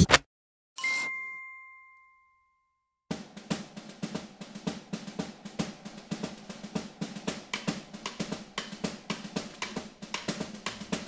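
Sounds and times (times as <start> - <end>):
struck chime ding: 0.8 - 2.8.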